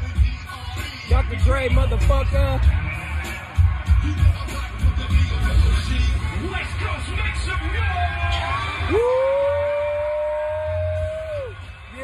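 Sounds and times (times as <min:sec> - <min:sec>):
voice whooping: 0:08.8 - 0:11.6.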